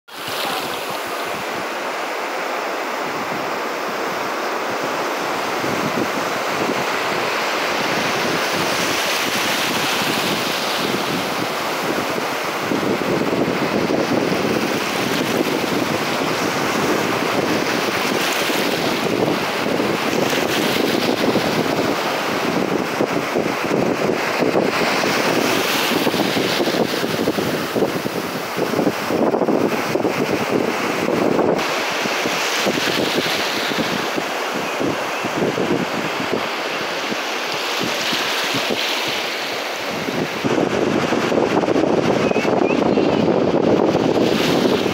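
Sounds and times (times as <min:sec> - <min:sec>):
surf washing up sandy beach: 0:00.1 - 0:44.9
wind buffeting microphone: 0:00.1 - 0:44.9.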